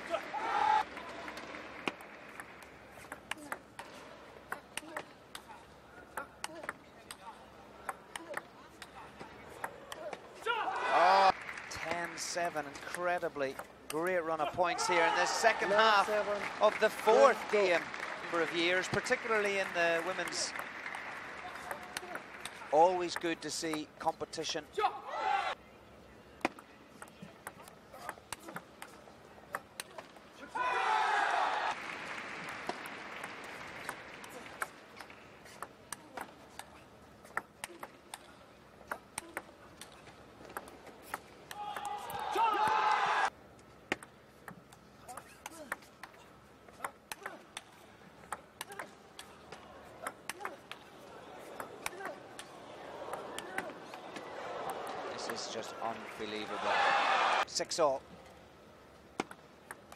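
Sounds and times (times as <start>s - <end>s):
crowd cheering and shouting: 0.0s - 1.3s, 10.4s - 11.3s, 14.6s - 17.8s, 30.4s - 31.8s, 41.5s - 43.3s, 52.4s - 57.4s.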